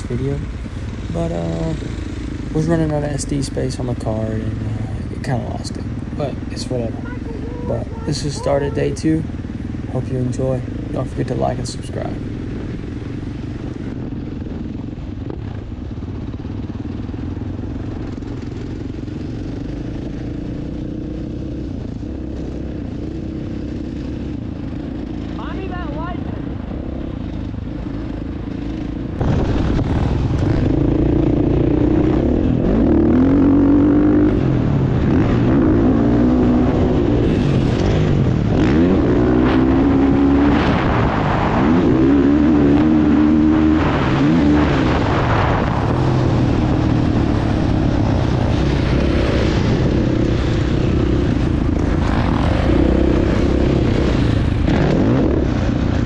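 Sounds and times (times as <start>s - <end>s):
dirt bike engine revving: 0.0s - 13.9s, 18.1s - 56.0s.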